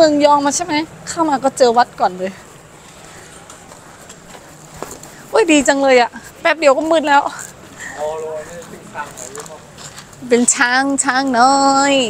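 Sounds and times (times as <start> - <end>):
outdoor background noise: 0.0 - 12.0
faint footsteps on pavement: 1.5 - 12.0.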